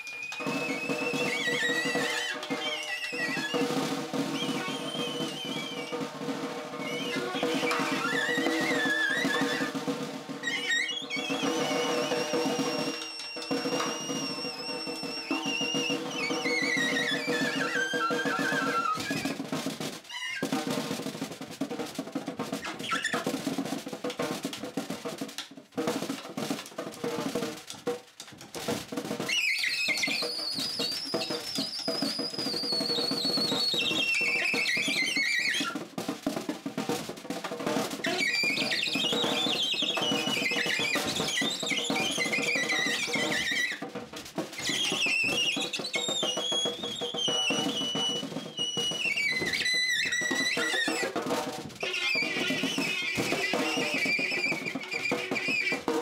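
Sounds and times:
snare drum rolls: 0.0 - 56.0.

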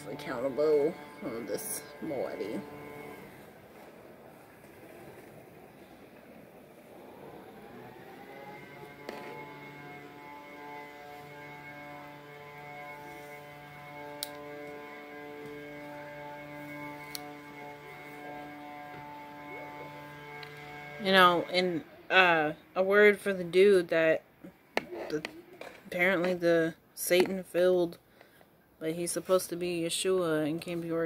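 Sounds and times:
synth drone of held tones: 0.0 - 22.3.

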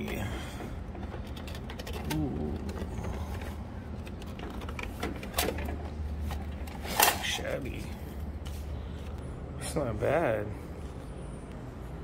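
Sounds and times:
steady low hum: 0.0 - 12.0
bill acceptor clicks: 1.0 - 7.5.

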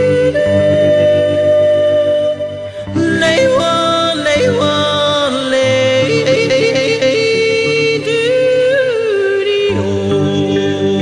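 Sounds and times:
woman yodeling: 0.0 - 11.0.

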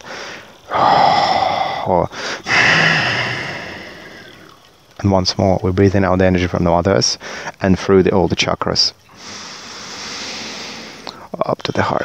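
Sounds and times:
slow breath close to microphone: 0.0 - 4.6, 9.1 - 11.3.

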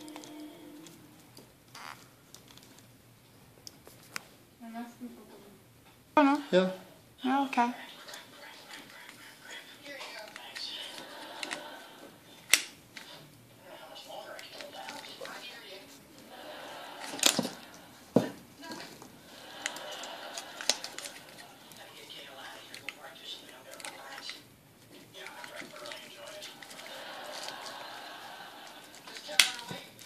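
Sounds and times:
muffled voices talking: 6.4 - 12.2, 13.0 - 17.0, 17.8 - 30.0.

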